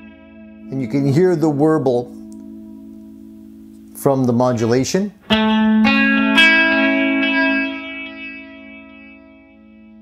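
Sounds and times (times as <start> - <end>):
electric guitar note with delay: 0.0 - 10.0.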